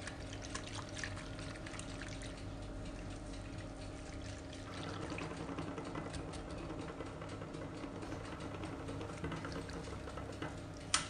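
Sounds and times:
whisk stirring liquid in saucepan: 0.0 - 10.6.

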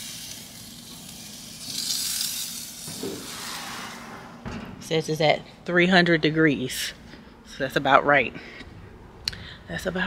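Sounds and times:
chicken sizzling on grill: 0.0 - 3.4.

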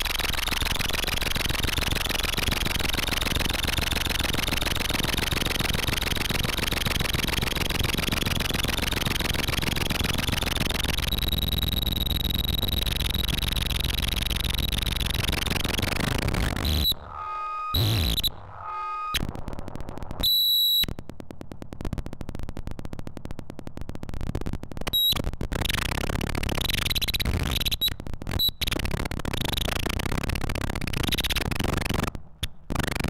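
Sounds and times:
fast stuttering pulse: 0.0 - 19.4, 32.7 - 33.0
harsh electronic synthesizer noise: 0.0 - 20.2, 32.7 - 33.0.

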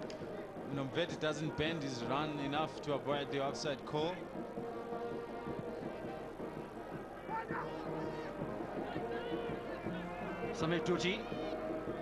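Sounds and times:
stadium crowd: 0.0 - 12.0.

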